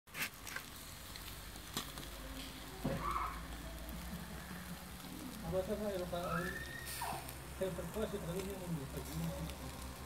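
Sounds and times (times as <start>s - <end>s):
crackling pops: 0.1s - 10.0s
fish sizzling over charcoal: 0.1s - 10.0s.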